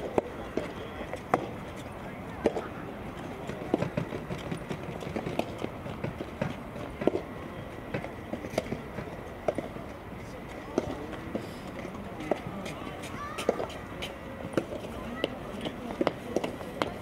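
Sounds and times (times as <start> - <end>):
tennis ball hits and bounces: 3.4 - 7.3, 7.9 - 9.7, 14.4 - 17.0.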